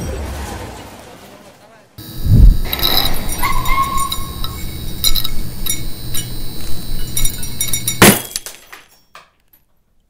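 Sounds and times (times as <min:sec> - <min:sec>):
electric buzz with crackling: 0:02.0 - 0:08.2
glass breaking: 0:07.2 - 0:09.3.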